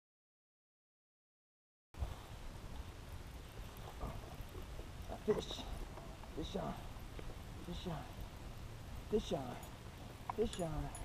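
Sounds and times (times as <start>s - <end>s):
faint outdoor noise: 2.0s - 11.0s.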